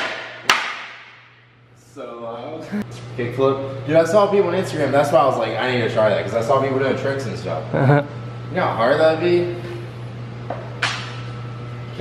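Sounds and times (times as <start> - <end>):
wooden board smacking concrete floor: 0.0 - 1.2.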